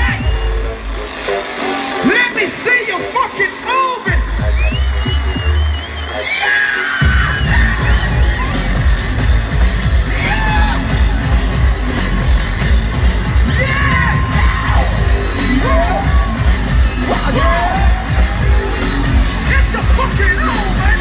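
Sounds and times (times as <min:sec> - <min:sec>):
crowd yelling and whooping: 0:00.0 - 0:21.0
electronic dance music: 0:00.0 - 0:21.0.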